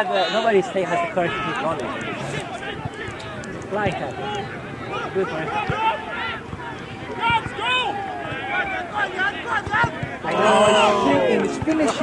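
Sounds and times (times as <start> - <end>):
people talking and calling out: 0.0 - 12.0
loud held shout: 7.1 - 11.4.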